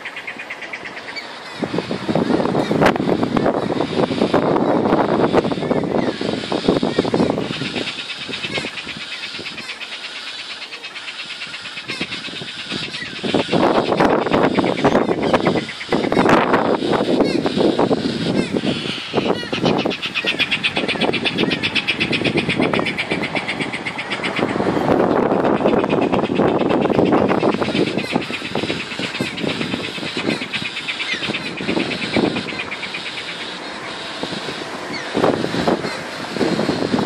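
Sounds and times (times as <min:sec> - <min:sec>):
passing road traffic: 0:00.0 - 0:37.0
fast high buzzing chatter: 0:01.3 - 0:37.0.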